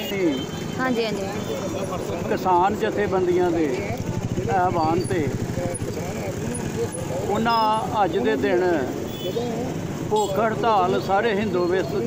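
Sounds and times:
man speaking: 0.0 - 0.5, 1.6 - 12.0.

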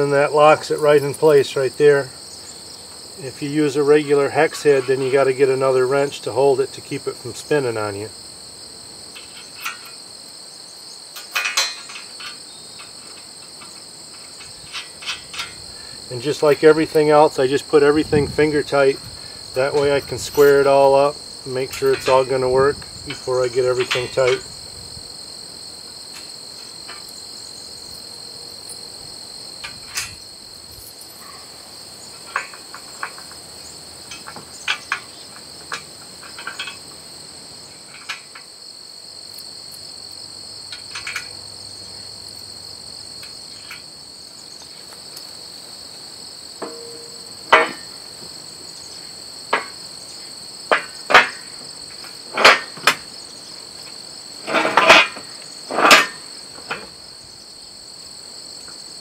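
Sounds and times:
metal frame parts clanking: 0.0 - 2.1, 3.2 - 8.1, 9.1 - 10.1, 11.1 - 24.6, 26.1 - 28.0, 29.6 - 37.0, 37.6 - 38.6, 40.7 - 41.4, 43.2 - 43.9, 46.6 - 48.4, 49.5 - 57.0
insects chirring: 0.0 - 59.0
sharp metal knocks: 9.1 - 10.0, 11.2 - 15.6, 21.5 - 24.5, 46.6 - 48.1, 49.5 - 49.8, 50.7 - 53.1, 54.4 - 57.0.

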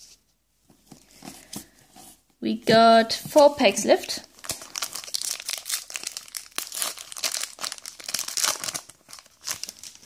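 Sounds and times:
foil wrapper crinkling and tearing: 4.3 - 10.0.

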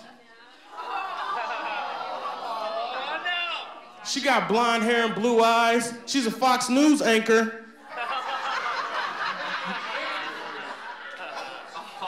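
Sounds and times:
audience laughing: 0.0 - 3.4, 7.8 - 12.0.

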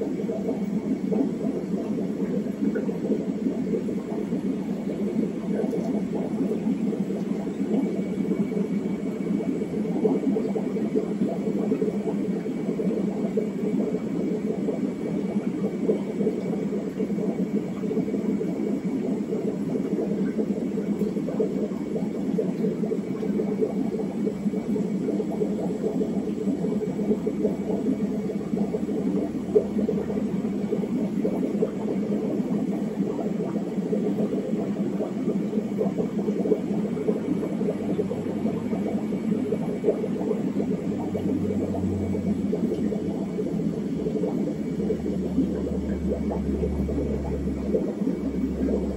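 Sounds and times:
air bubbling in fish tanks: 0.0 - 48.9.

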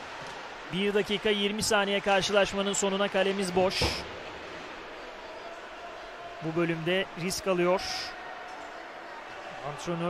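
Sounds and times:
ice rink and crowd hiss: 0.0 - 10.0.

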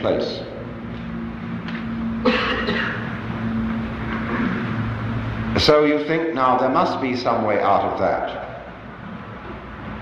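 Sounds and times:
steady low hum: 0.0 - 10.0
person coughing: 2.2 - 3.2.

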